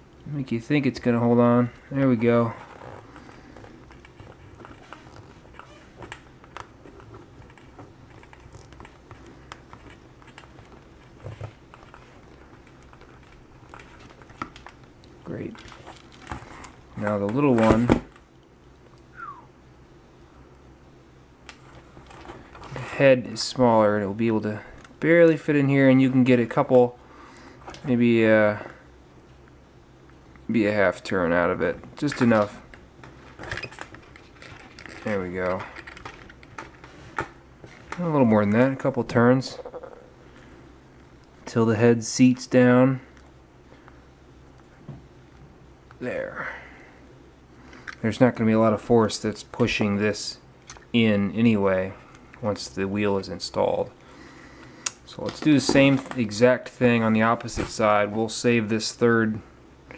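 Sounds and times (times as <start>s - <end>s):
low hum: 18.1s - 41.6s.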